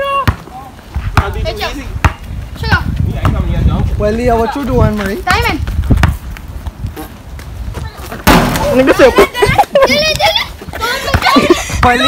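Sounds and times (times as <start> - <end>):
young voices calling and laughing: 0.0 - 3.1, 6.9 - 12.0.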